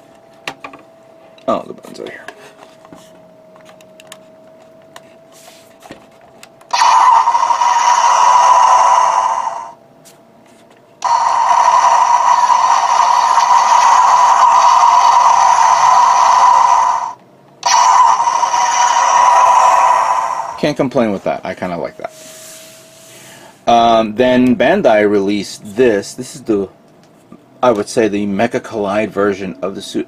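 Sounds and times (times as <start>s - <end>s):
spaceship engine sound effect: 6.7s - 9.8s, 11.0s - 22.9s.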